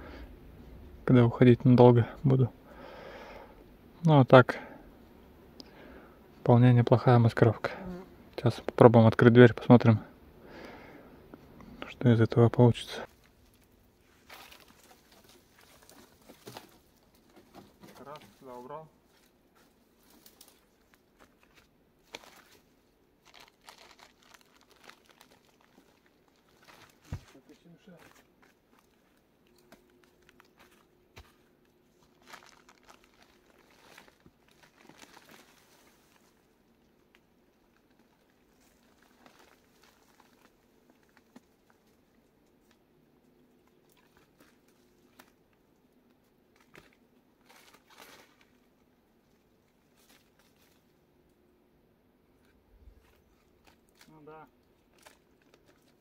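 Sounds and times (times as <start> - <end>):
dry branches cracking and rustling: 13.1 - 18.7, 20.0 - 27.6, 28.6 - 31.3, 32.0 - 42.8, 46.5 - 48.7, 53.0 - 56.0.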